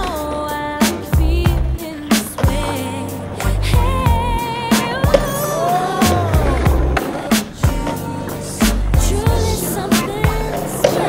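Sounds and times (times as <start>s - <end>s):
skateboard clacking on rail: 0.0s - 3.5s, 4.4s - 8.8s, 9.6s - 11.0s
music with beat and singing: 0.0s - 11.0s
skateboard rolling on pavement: 0.0s - 11.0s.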